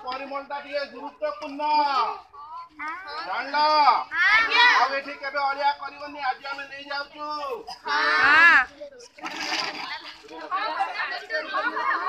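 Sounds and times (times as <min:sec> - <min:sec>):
people talking at once: 0:07.2 - 0:12.0.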